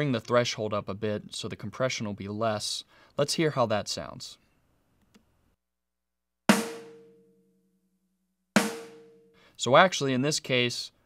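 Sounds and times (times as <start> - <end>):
snare drum hits: 6.5 - 7.1, 8.6 - 9.2.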